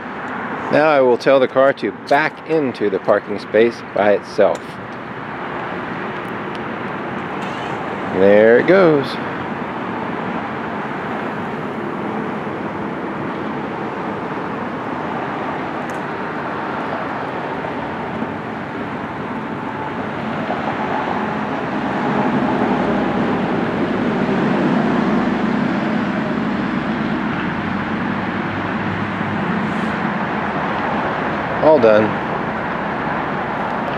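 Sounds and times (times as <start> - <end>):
car rolling slowly: 3.8 - 33.9.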